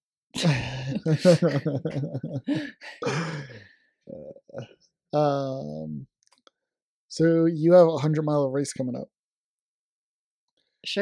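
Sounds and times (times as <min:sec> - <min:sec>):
person sighing: 0:00.4 - 0:01.5, 0:02.5 - 0:04.6.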